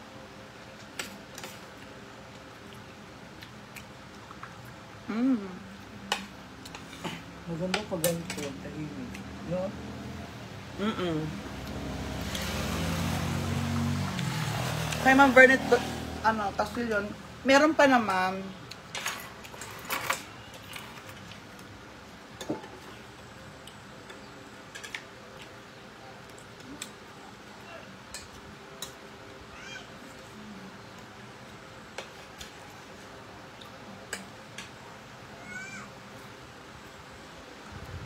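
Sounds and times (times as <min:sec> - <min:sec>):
low room hum: 0:00.0 - 0:14.7.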